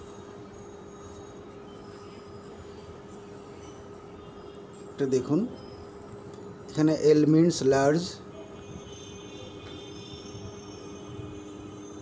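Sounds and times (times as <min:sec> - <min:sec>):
faint constant tones: 0:00.0 - 0:12.0
low background hum: 0:00.0 - 0:12.0.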